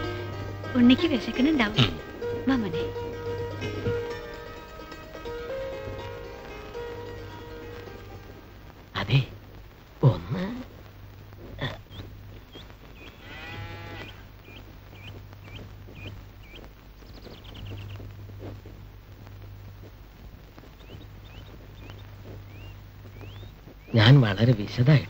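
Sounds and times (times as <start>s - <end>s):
low steady hum: 0.0s - 25.0s
animal bleating: 11.4s - 18.8s
short high bird chirps: 14.0s - 18.0s, 20.8s - 24.0s.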